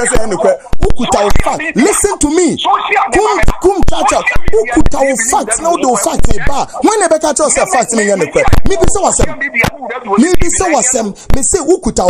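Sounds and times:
man talking fast and loudly: 0.0 - 12.0.

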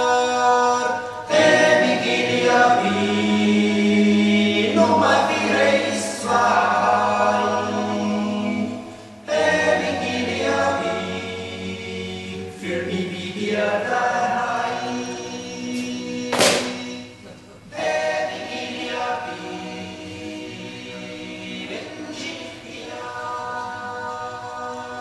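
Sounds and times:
choir singing held chords: 0.0 - 25.0.

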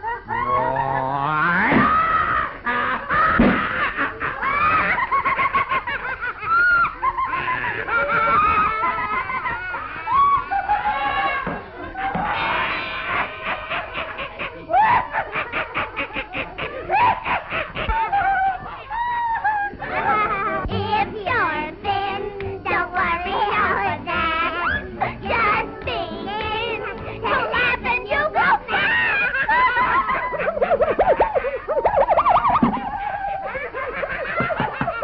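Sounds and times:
cartoon boy laughing: 0.0 - 11.4, 12.1 - 20.4, 28.1 - 35.0.

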